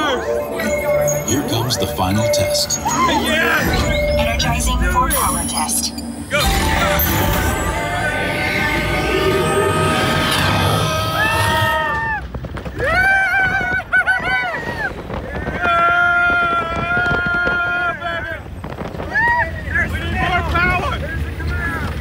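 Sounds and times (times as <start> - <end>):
low rumble of wind and vehicle: 3.6 - 22.0
riders screaming and whooping: 7.6 - 22.0.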